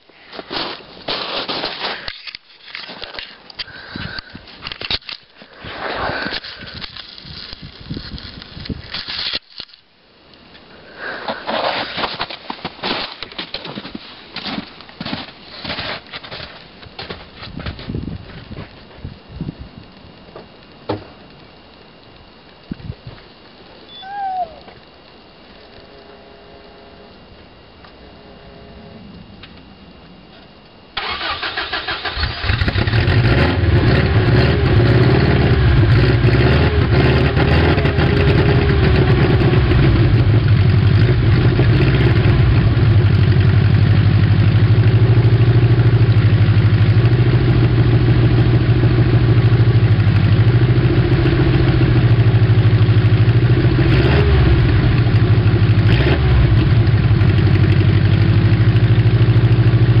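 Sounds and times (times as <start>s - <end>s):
engine starter cranking: 31.0s - 33.8s
car engine idling: 31.0s - 60.0s.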